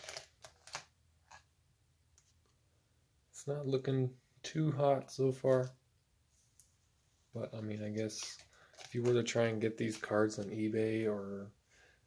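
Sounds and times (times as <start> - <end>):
plastic binder page rustling: 0.0 - 1.4, 7.9 - 10.6.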